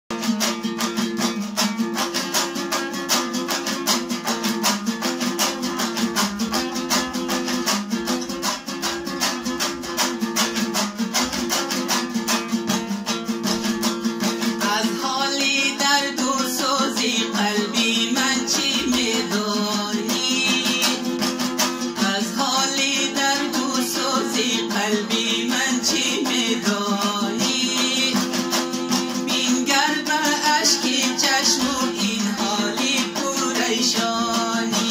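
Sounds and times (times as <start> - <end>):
lute strummed fast: 0.1 - 34.9
man singing: 14.5 - 34.9.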